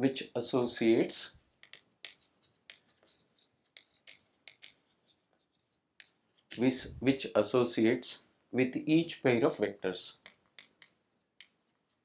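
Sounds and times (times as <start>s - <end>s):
chalk tapping on chalkboard: 1.6s - 6.7s, 10.1s - 12.0s
chalk scratching: 1.6s - 6.8s, 10.1s - 12.0s.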